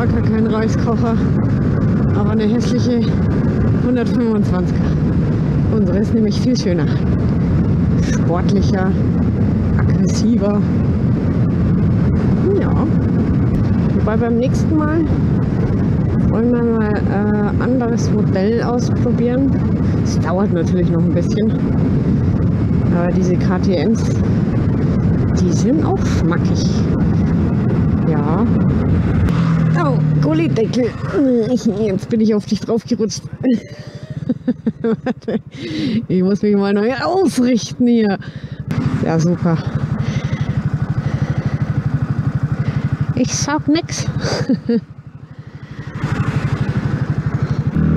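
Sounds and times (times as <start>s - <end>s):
wind on microphone: 0.0s - 33.5s
motorcycle engine cruising: 0.0s - 47.9s.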